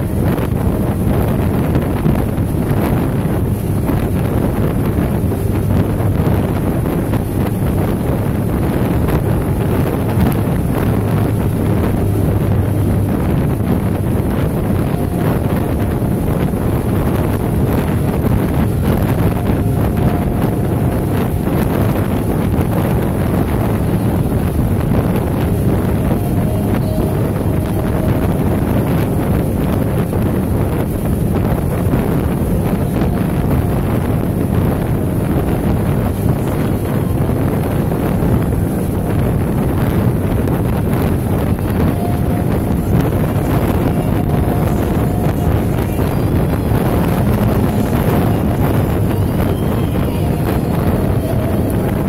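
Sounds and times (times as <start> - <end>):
road noise: 0.0 - 52.0
wind rushing over microphone: 0.0 - 52.0.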